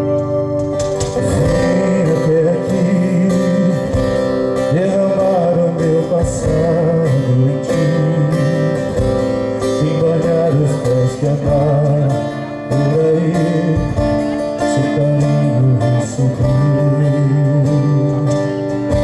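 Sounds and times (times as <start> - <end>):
cajon and drum strikes: 0.0 - 7.9, 8.9 - 12.1, 12.9 - 14.6, 18.8 - 19.0
bass line: 0.0 - 19.0
strummed acoustic guitar: 0.0 - 19.0
man singing: 1.1 - 19.0.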